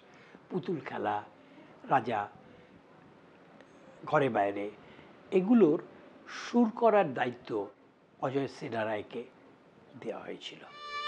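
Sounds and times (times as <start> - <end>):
violin held note: 10.7 - 11.0.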